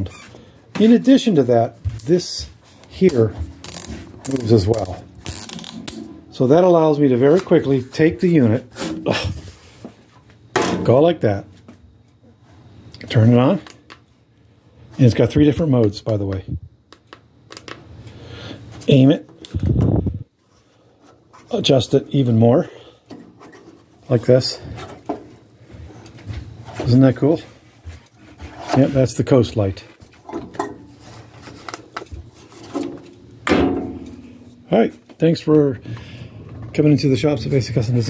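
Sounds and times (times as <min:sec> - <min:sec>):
plastic work light handling: 0:30.0 - 0:33.2.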